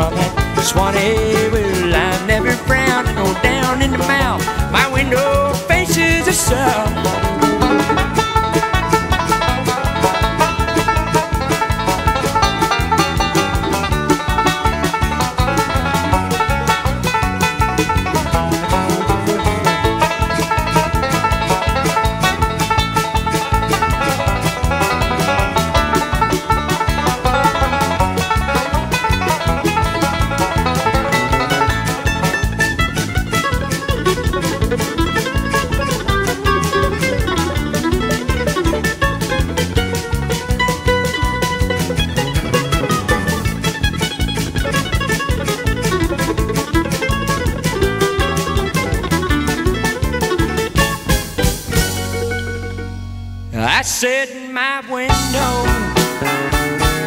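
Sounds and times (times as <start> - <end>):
bluegrass band playing: 0.0 - 54.2, 54.9 - 57.0
acoustic guitar: 0.0 - 57.0
banjo lead: 0.0 - 57.0.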